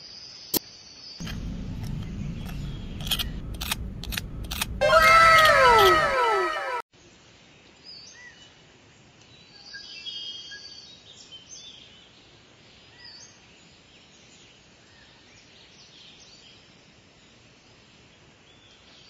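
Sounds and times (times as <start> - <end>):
outdoor ambience: 0.0 - 9.9
sharp scraping clicks: 1.2 - 6.1
overlapping calls falling in pitch: 4.8 - 6.8.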